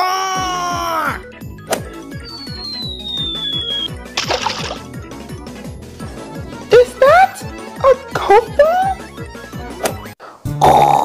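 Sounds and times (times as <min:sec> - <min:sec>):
background music with steady beat: 0:00.4 - 0:10.6
falling whistle: 0:02.1 - 0:04.0
ball splashing into drink: 0:04.2 - 0:04.9.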